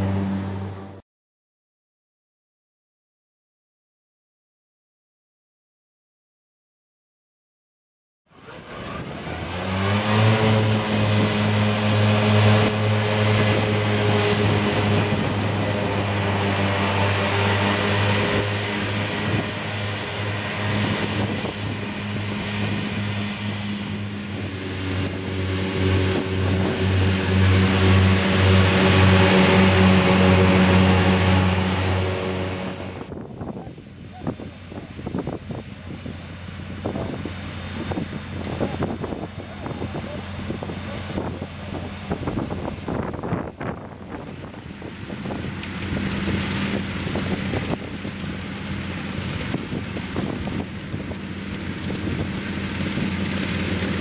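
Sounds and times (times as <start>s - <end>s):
mower cutting discs whirring: 8.3s - 33.1s, 43.7s - 54.0s
tractor engine running: 8.4s - 33.2s, 33.9s - 54.0s.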